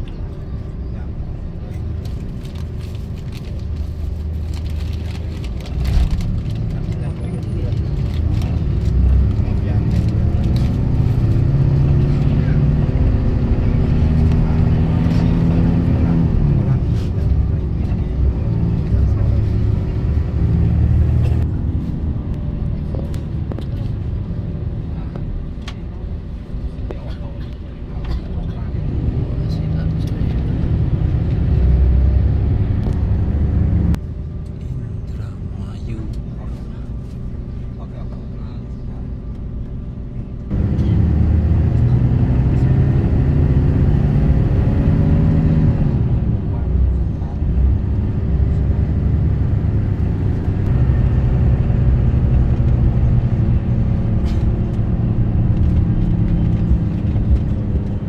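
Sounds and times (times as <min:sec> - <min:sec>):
vehicle engine accelerating: 0:00.0 - 0:27.0, 0:27.9 - 0:58.0.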